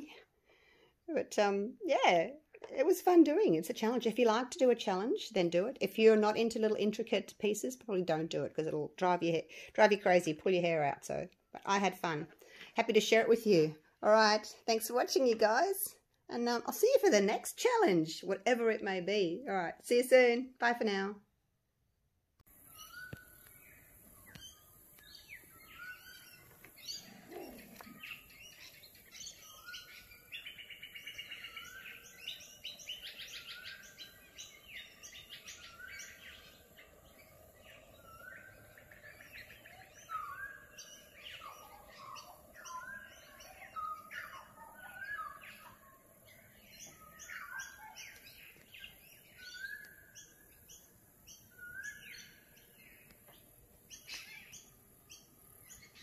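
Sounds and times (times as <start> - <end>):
bird trills: 22.5 - 56.0
birds chirping and calling: 22.5 - 56.0.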